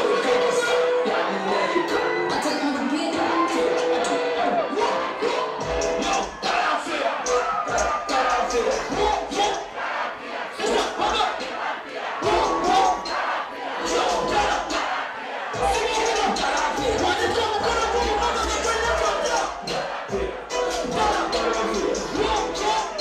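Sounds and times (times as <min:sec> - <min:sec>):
crowd shouting and singing: 0:00.0 - 0:23.0
music with thumping bass: 0:05.6 - 0:06.4, 0:12.2 - 0:13.0, 0:15.6 - 0:23.0.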